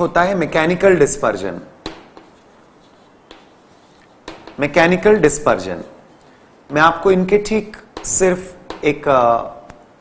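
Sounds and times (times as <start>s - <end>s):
chalk scratching on blackboard: 1.8s - 6.1s
chalk tapping: 1.8s - 7.1s, 7.7s - 9.2s.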